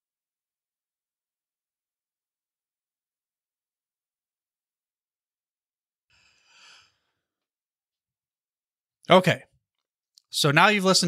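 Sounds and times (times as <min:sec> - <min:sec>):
faint breath: 0:06.1 - 0:07.4.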